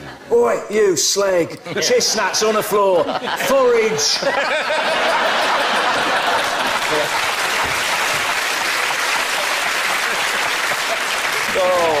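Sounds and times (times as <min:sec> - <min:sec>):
audience laughing: 0:01.7 - 0:08.7
audience clapping: 0:05.2 - 0:12.0.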